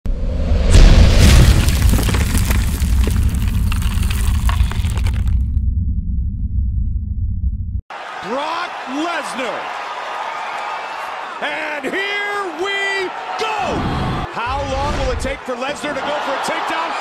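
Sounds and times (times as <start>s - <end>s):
low rumble: 0.2s - 7.8s
deep boom: 0.4s - 7.8s
crackling crumbling debris: 1.2s - 5.6s.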